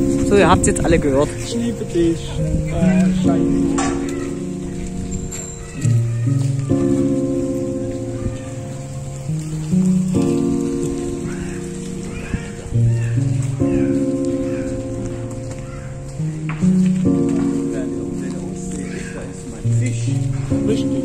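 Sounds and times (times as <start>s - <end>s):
background music with sustained chords: 0.0s - 21.0s.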